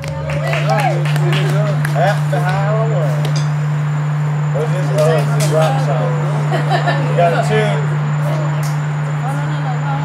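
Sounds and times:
indistinct voices talking: 0:00.0 - 0:10.0
low electrical hum: 0:00.0 - 0:10.0.

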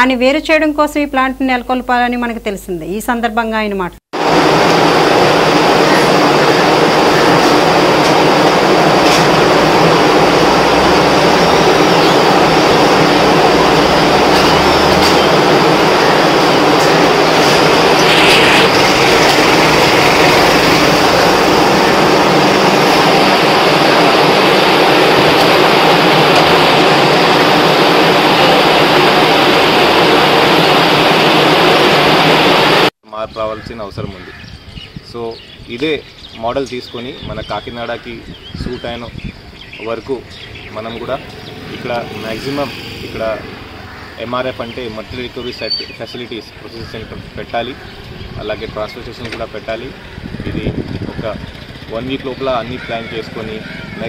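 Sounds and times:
conveyor machine din: 0:04.2 - 0:32.9, 0:39.7 - 0:54.0.

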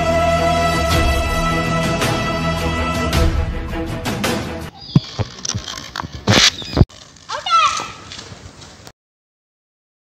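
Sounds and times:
high-pitched wordless shout: 0:07.3 - 0:08.0.

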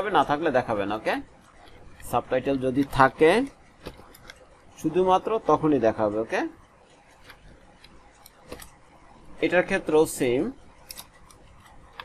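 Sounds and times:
man speaking: 0:00.0 - 0:01.3, 0:02.0 - 0:03.6, 0:04.8 - 0:06.6, 0:09.4 - 0:10.6
computer keyboard clicks: 0:10.8 - 0:12.0.

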